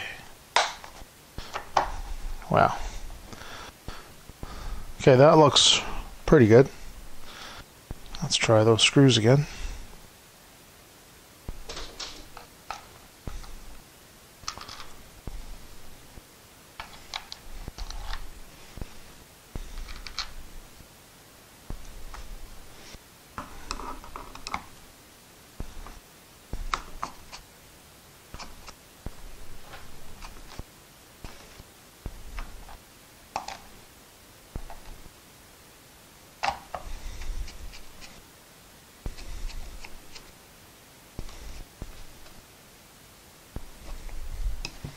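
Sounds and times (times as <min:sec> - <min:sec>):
screwdriver clicking and scraping: 0:28.4 - 0:30.6, 0:36.4 - 0:38.2, 0:39.1 - 0:40.3.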